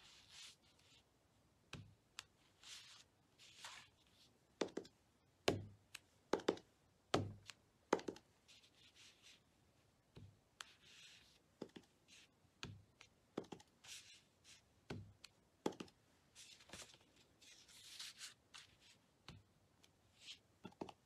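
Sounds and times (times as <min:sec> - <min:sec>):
rubber stamp knocking: 0:04.6 - 0:08.2
soft scraping rubs: 0:16.3 - 0:19.0.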